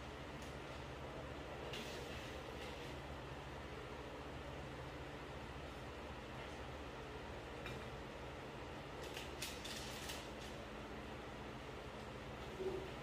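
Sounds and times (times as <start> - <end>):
room hum: 0.0 - 13.0.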